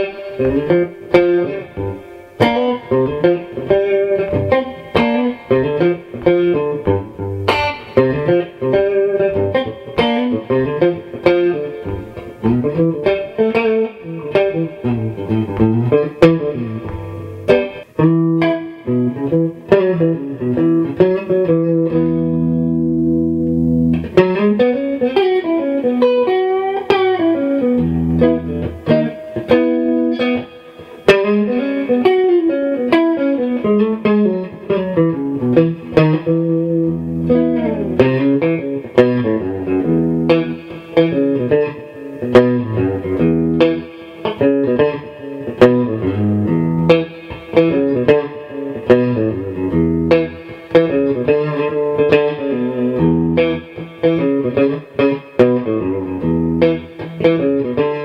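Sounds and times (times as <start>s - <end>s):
electric guitar lead lines: 0.0s - 58.0s
held guitar chord: 0.0s - 58.0s.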